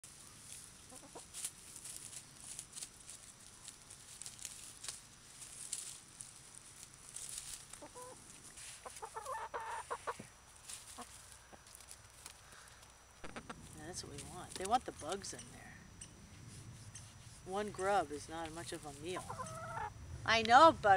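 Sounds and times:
rustling in dry leaves: 0.0s - 15.4s, 16.2s - 19.8s
chickens clucking: 0.8s - 1.5s, 7.3s - 12.4s, 18.3s - 20.0s.

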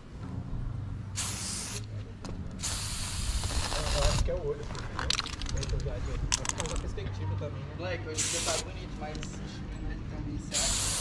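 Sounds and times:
spray can hiss: 1.2s - 1.9s, 2.6s - 4.2s, 8.2s - 8.7s, 10.5s - 11.0s.

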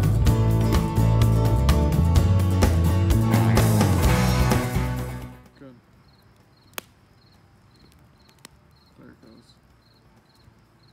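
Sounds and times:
music: 0.0s - 5.6s
wood fire popping: 2.7s - 10.9s
crickets chirping: 5.5s - 10.9s.

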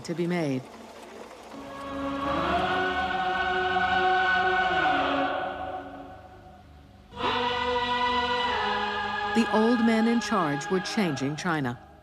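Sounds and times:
choir singing sustained chords: 1.4s - 12.0s.

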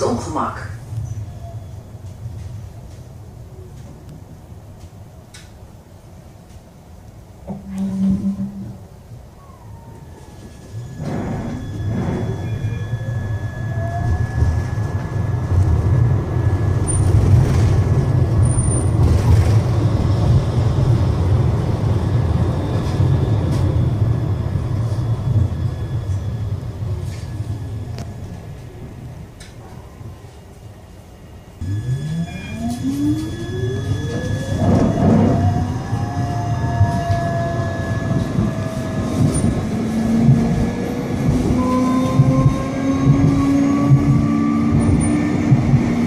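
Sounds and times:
wheels rumbling on rail: 0.0s - 46.0s
short low beep: 10.7s - 14.7s, 31.6s - 35.7s.

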